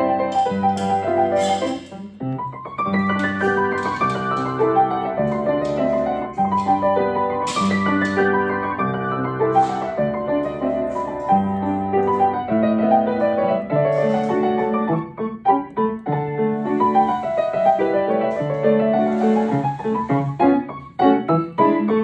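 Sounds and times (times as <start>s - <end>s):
gentle piano melody: 0.0s - 22.0s.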